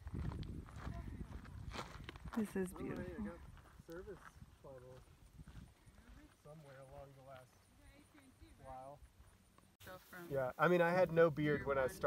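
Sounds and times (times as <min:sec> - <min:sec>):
wind buffeting microphone: 0:00.0 - 0:06.2.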